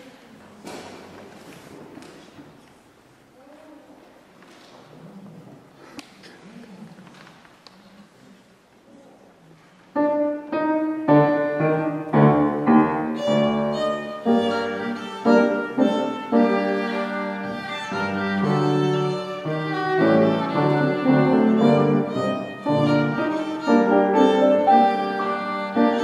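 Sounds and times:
piano accompaniment: 10.0 - 26.0
violin solo: 11.2 - 26.0.

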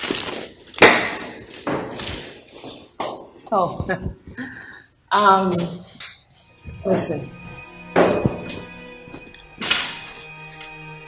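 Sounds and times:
rustling and scraping: 0.0 - 4.4, 5.6 - 10.7.

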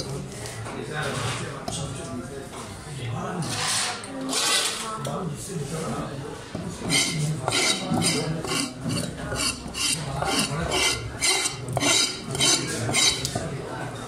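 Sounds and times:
blade scraping fish scales: 6.9 - 13.3.

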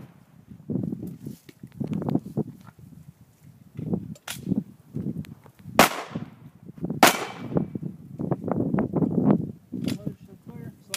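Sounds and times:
handgun shots echoing: 5.8 - 6.2, 7.0 - 7.5.

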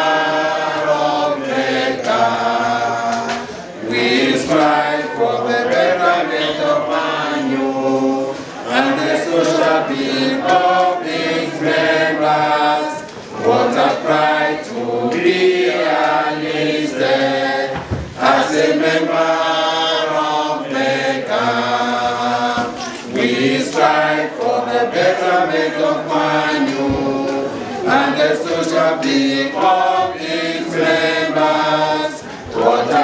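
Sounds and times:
group singing long notes: 0.0 - 33.0.

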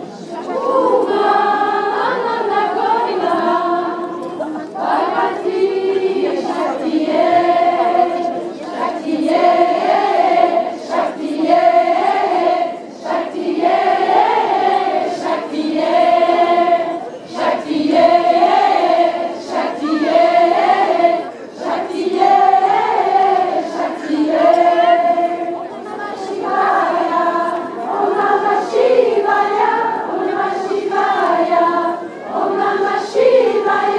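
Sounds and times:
crowd of women singing in unison: 0.0 - 33.9.

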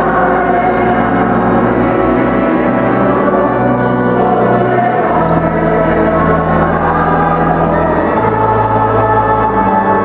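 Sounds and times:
choir singing a hymn: 0.0 - 10.0
organ accompaniment: 0.0 - 10.0.

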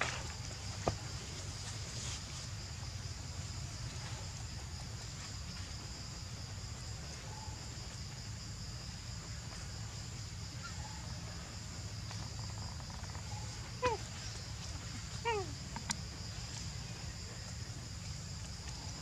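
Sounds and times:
insect chorus buzzing: 0.0 - 19.0.

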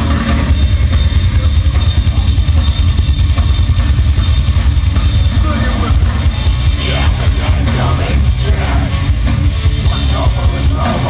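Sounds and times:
heavy metal band playing: 0.0 - 11.0
rapid bass drum strokes: 0.0 - 11.0.

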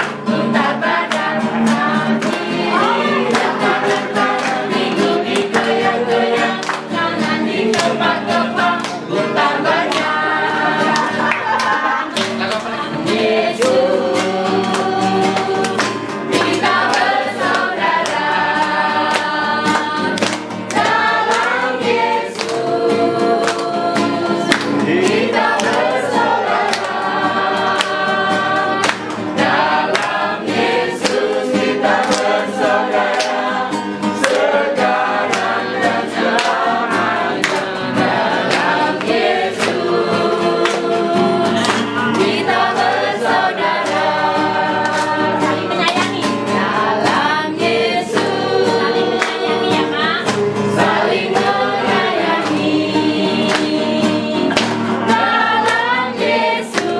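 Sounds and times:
group singing gospel song: 0.0 - 56.9.

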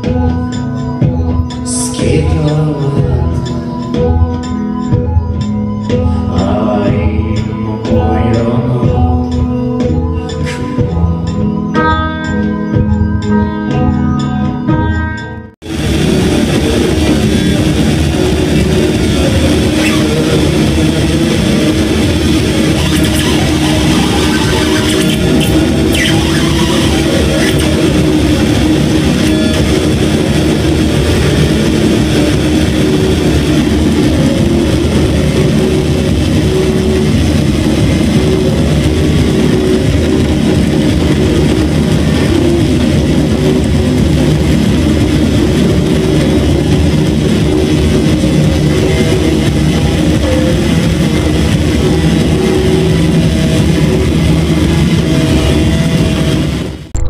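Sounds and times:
loud experimental music: 0.0 - 57.0.

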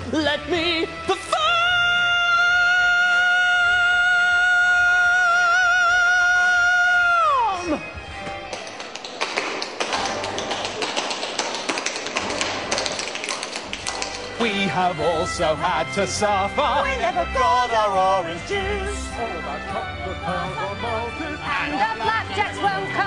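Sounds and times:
backing music: 0.0 - 23.0
tap-dance footwork: 8.7 - 14.4.

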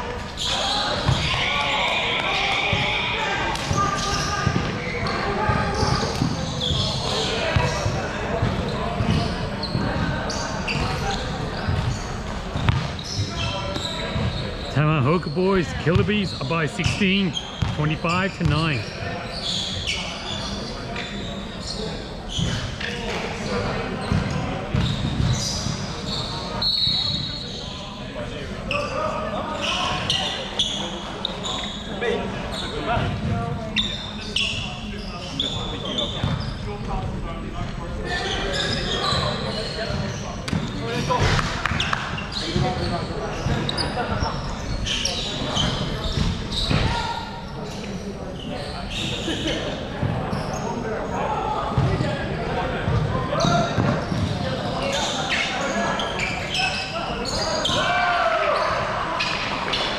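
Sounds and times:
players' voices: 0.0 - 59.9.

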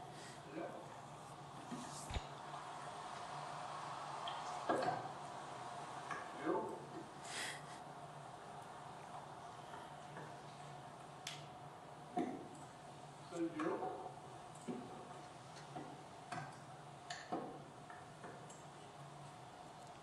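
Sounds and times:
low room hum: 0.0 - 20.0
faint clicks and taps: 8.6 - 12.8, 14.4 - 20.0.

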